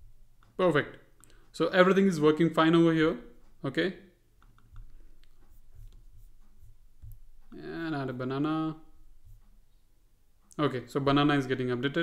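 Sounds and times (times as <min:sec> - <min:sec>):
computer mouse clicks: 0:04.4 - 0:06.1.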